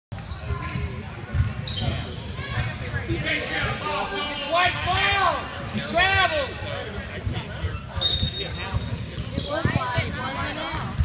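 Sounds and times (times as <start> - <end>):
spectators' voices: 0.2 - 11.0.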